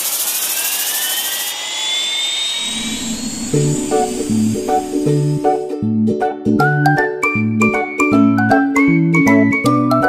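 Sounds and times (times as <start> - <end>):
drone propellers whirring: 0.0 - 5.7.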